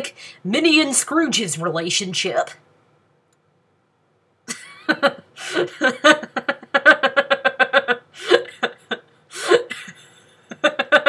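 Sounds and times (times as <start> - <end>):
woman stifled laugh: 4.5 - 11.0.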